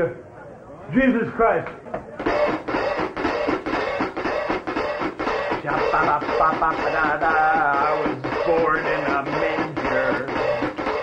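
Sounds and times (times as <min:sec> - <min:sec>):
band playing: 0:02.2 - 0:11.0.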